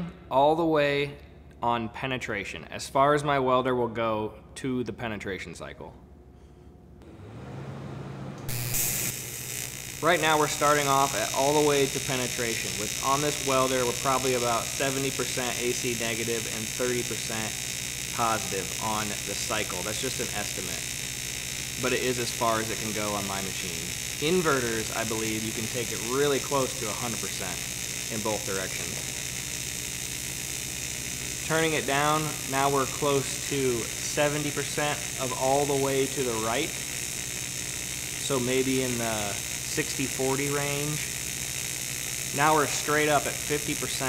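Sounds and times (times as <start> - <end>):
welding arc buzzing hiss: 8.4 - 44.0
shielding gas hissing from torch: 8.5 - 44.0.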